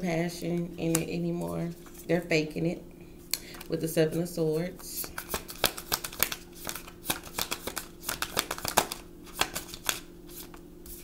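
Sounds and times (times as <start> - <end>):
cards being shuffled: 5.0 - 11.0.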